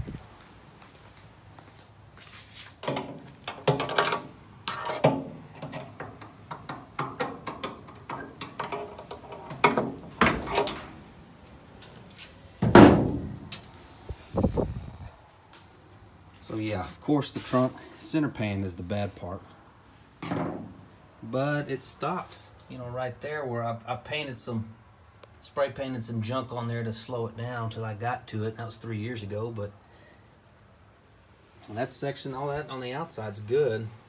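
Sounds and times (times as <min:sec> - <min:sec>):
light thud: 0:12.6 - 0:13.5.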